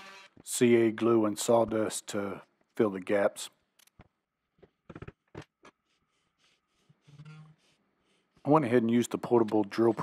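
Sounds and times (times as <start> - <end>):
wooden workpiece knocks and clicks: 4.8 - 5.5.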